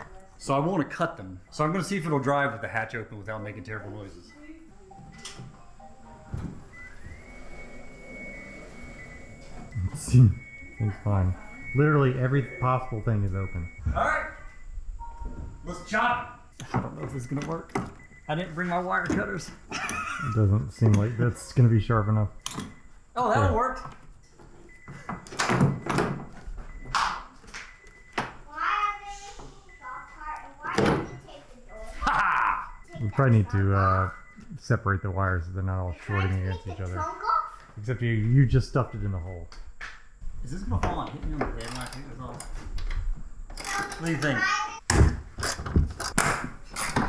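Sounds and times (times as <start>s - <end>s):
car door warning beeper: 6.3s - 19.5s, 20.3s - 32.0s, 32.6s - 35.8s
electric car motor whine: 6.4s - 13.4s
thump: 44.9s - 46.5s.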